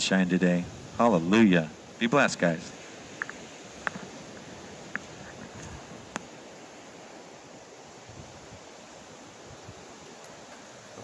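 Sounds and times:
distant ocean surf: 0.0s - 11.0s
wind: 0.0s - 11.0s
faint clicks: 3.2s - 6.3s.

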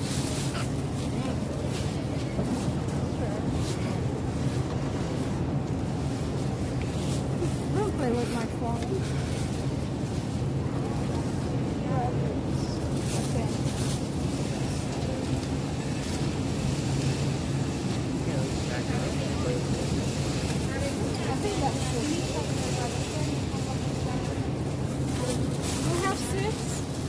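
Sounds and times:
low store hum: 0.0s - 27.0s
plastic bag rustling: 0.0s - 27.0s.

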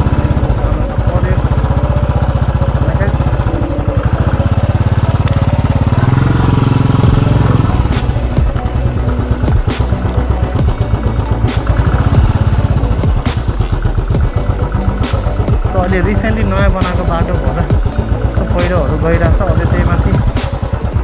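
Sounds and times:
motorcycle engine running: 0.0s - 21.0s
background music with beat: 2.2s - 21.0s.

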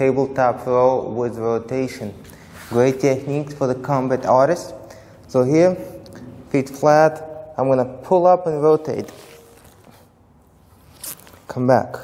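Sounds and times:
clothing rustling: 2.2s - 3.4s, 8.9s - 11.6s.

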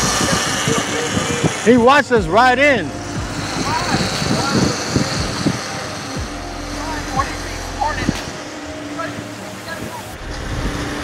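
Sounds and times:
faint high motor whine: 0.0s - 11.0s
wind on microphone: 0.0s - 11.0s.

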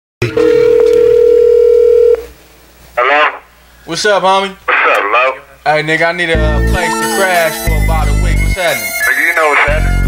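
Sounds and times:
telephone ringing tone: 0.2s - 2.2s
person answering through phone: 0.4s - 2.2s.

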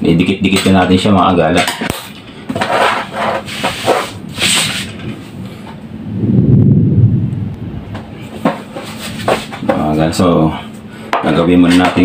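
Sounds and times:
loud low rumble: 5.1s - 8.3s.

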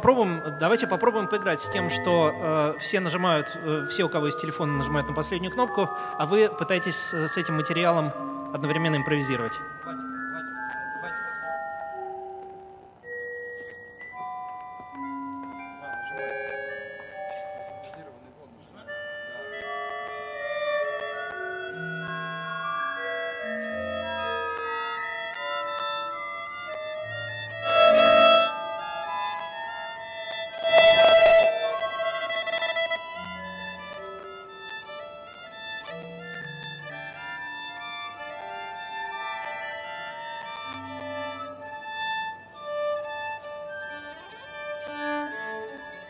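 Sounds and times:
violin: 0.0s - 46.0s.

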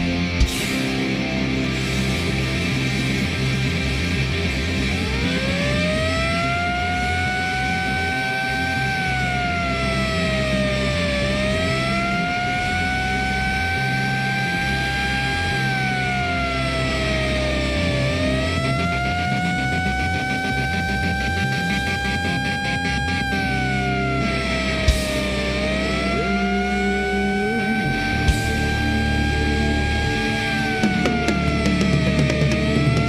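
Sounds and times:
siren wail over loudspeakers: 4.2s - 33.0s.

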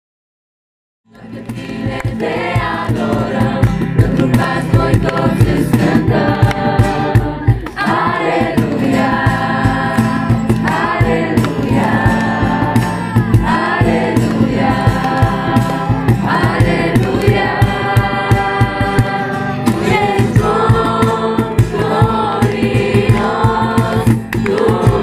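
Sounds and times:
group singing a worship song: 1.1s - 25.0s
steady beat: 1.4s - 25.0s.

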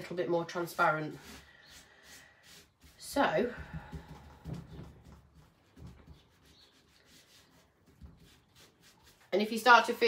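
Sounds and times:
cling film rubbing on paper: 1.1s - 3.2s, 5.5s - 9.6s.

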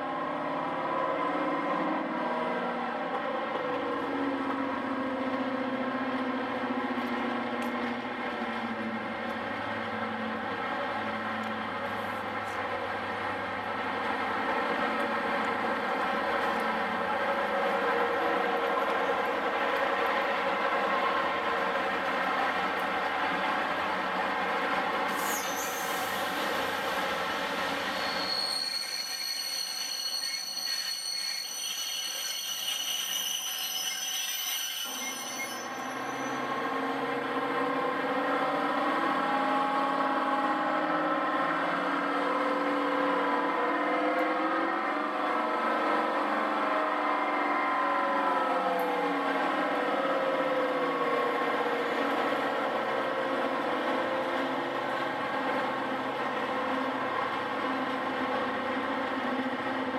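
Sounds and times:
diesel locomotive engine: 0.0s - 59.9s
high wheel squeal: 25.1s - 26.8s, 27.6s - 36.9s.

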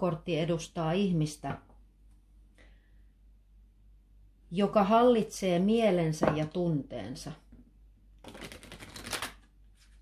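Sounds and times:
playing cards being shuffled: 8.2s - 10.0s.

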